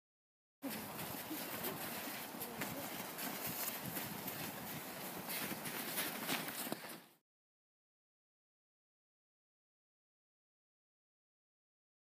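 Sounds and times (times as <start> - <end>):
children's voices: 0.6 - 3.2
footsteps crunching in snow: 0.6 - 7.2.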